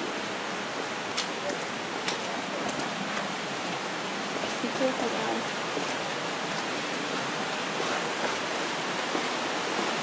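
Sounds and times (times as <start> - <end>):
stream rushing: 0.0 - 10.0.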